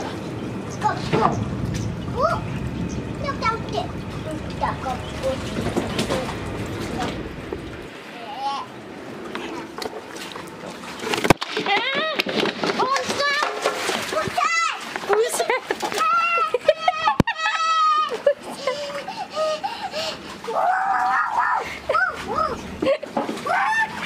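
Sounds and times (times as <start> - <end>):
water splashing and sloshing: 0.0 - 24.0
child calling out and squealing: 20.5 - 22.6, 23.4 - 24.0.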